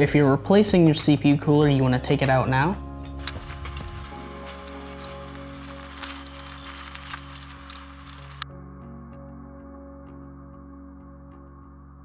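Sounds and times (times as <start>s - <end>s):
background music with low beat: 0.0s - 12.0s
screwdriver clinks and rustles: 3.0s - 8.4s.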